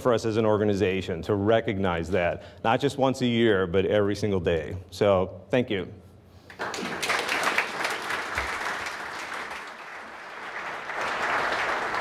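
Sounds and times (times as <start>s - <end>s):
audience applauding: 6.5s - 12.0s.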